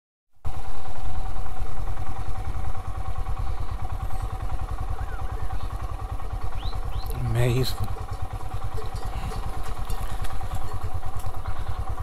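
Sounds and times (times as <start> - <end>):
motorcycle engine running: 0.4 - 12.0.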